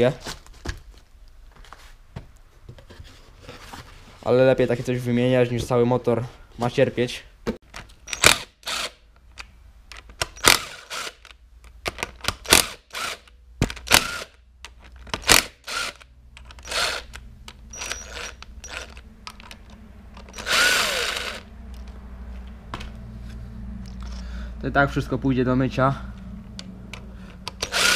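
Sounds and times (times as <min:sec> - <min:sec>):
power tool whirring: 0:08.1 - 0:09.0, 0:10.3 - 0:11.3, 0:12.5 - 0:14.4, 0:15.2 - 0:19.0, 0:20.2 - 0:21.5, 0:27.5 - 0:27.9
tool clicks and knocks: 0:26.5 - 0:27.9.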